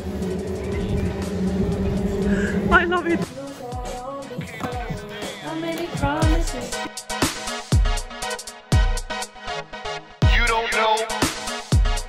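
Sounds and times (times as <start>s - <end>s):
parade float motor humming: 0.0s - 4.0s
street crowd noise: 0.0s - 6.6s.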